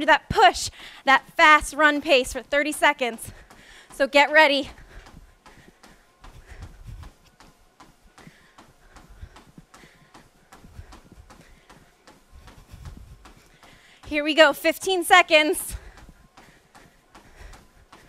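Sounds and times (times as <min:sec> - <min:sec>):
running footfalls on a treadmill: 0:00.0 - 0:18.0.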